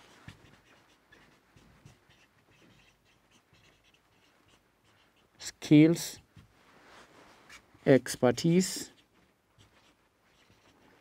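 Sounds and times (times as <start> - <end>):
marker pen scratching on whiteboard: 0.0 - 6.5, 7.4 - 8.2, 8.8 - 11.0.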